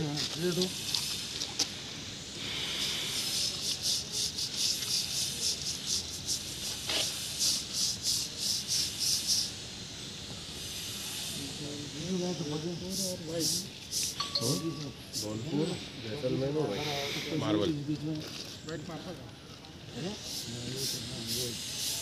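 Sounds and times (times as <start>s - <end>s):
stiff brush scrubbing plaster: 3.1s - 9.5s.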